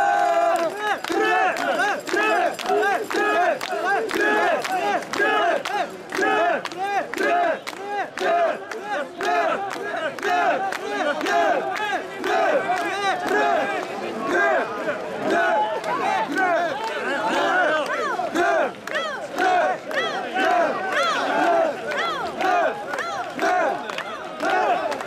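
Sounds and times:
crowd chanting in rhythm: 0.0 - 25.0.

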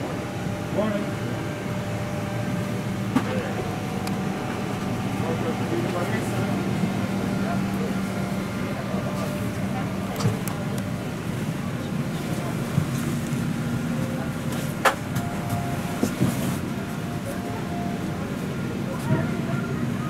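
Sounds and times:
cabin air system hum: 0.0 - 20.0
murmur of passengers' voices: 0.0 - 20.0.

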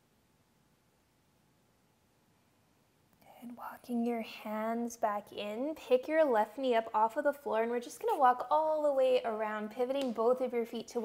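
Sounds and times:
woman speaking softly: 3.2 - 11.0.

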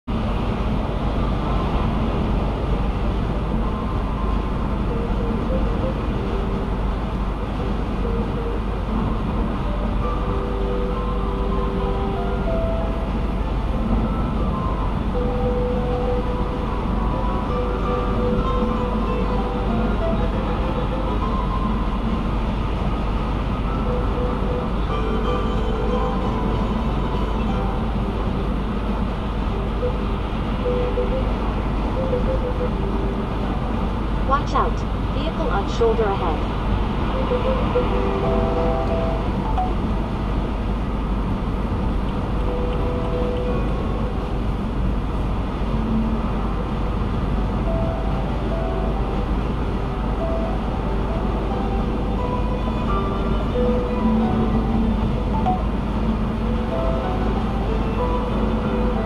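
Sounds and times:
road and tyre noise: 0.0 - 59.0.

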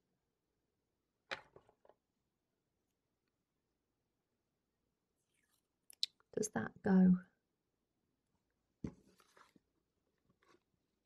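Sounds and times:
paper crinkling: 8.9 - 10.8.

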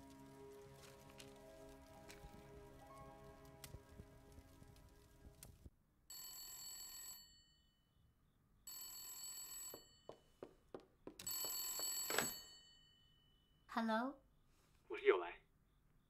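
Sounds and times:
telephone bell ringing: 6.1 - 7.8, 8.7 - 10.3, 11.2 - 13.5.

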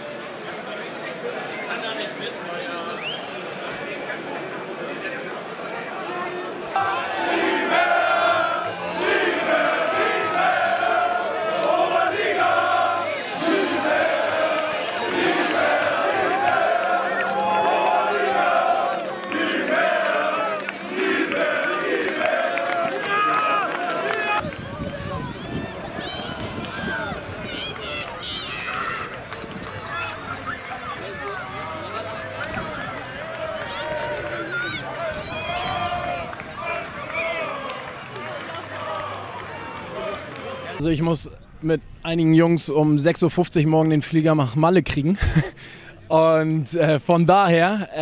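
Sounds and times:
rough crowd noise: 0.0 - 43.0
football crowd singing a chant: 6.8 - 24.4.

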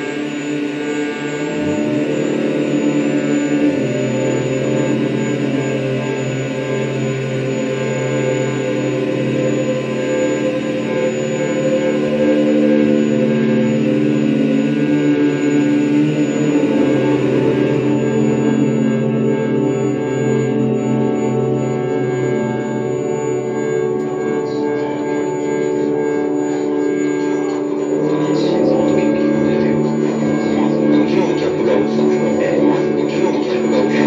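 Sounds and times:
deep drone tone: 0.0 - 34.0
electronic drone music: 0.0 - 34.0.

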